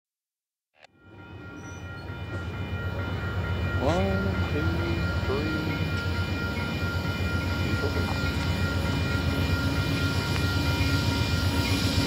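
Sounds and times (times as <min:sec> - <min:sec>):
train rumbling: 0:01.0 - 0:12.0.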